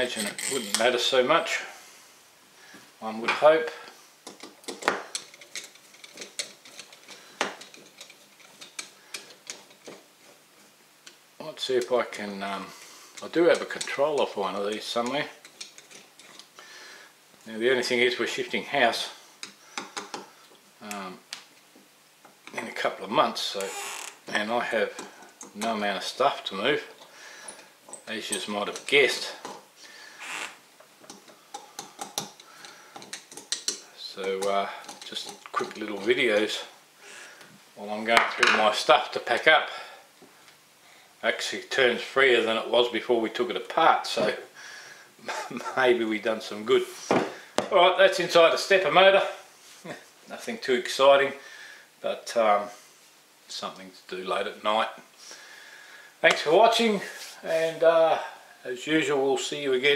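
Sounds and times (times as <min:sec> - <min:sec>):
screwdriver metallic ticks: 0:33.0 - 0:33.8.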